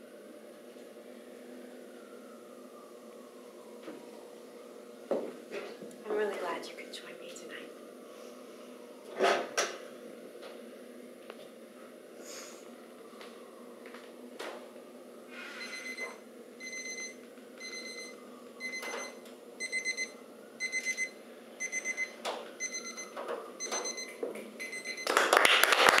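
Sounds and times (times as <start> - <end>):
electronic alarm beeping: 15.6 - 25.1.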